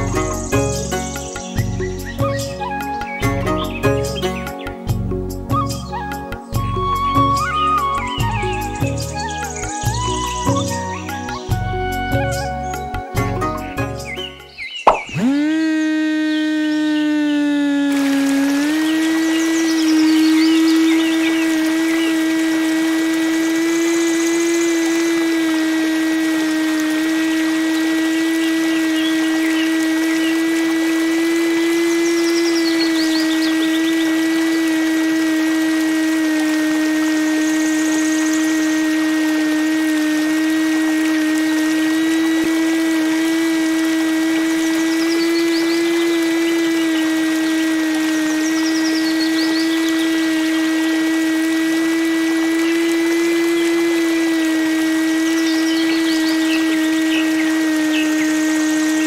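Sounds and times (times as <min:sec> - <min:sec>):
small motor whining: 0:00.0 - 0:59.0.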